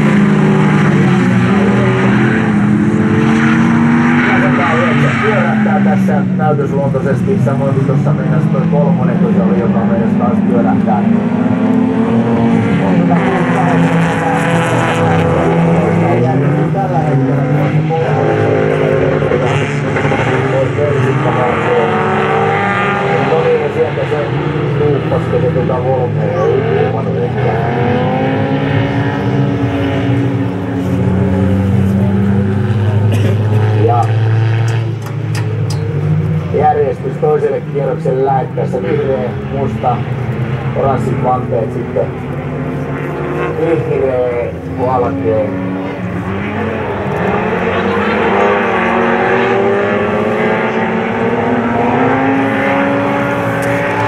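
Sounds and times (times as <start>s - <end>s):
racing car engines revving: 0.0s - 54.0s.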